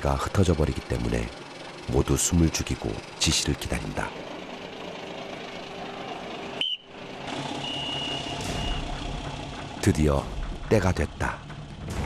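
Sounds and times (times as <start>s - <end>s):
boat engine and machinery hum: 0.0s - 12.0s.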